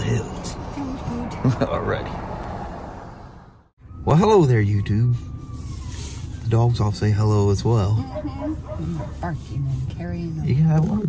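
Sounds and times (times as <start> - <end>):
vehicle hum inside car: 4.4 - 11.0.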